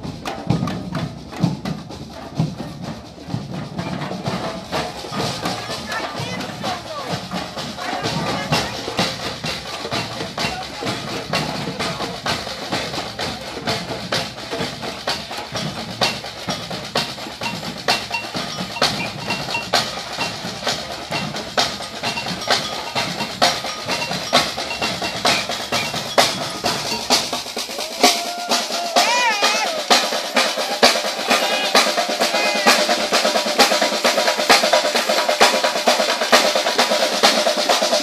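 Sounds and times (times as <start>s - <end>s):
samba drum section playing: 0.0s - 38.0s.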